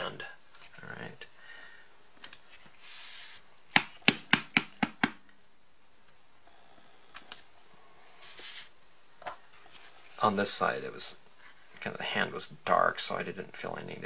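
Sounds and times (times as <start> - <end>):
rubber stamp tapping on desk: 3.8 - 5.2
soft rubbing: 7.8 - 8.8.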